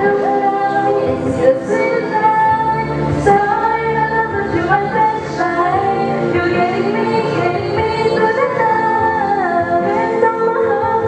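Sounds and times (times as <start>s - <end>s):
bass line: 0.0s - 11.0s
girls singing: 0.0s - 11.0s
instrumental backing track: 0.0s - 11.0s.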